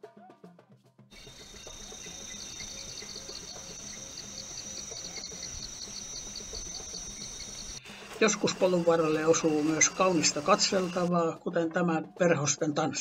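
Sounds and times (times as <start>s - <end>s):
high-pitched insect drone: 1.2s - 11.1s
pulsing insect chirp: 1.2s - 11.1s.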